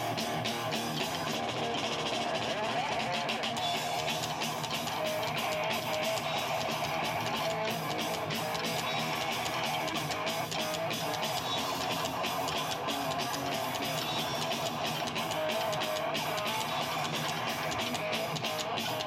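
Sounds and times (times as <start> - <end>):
drums keeping a steady beat: 0.0 - 19.0
strummed guitars: 0.0 - 19.0.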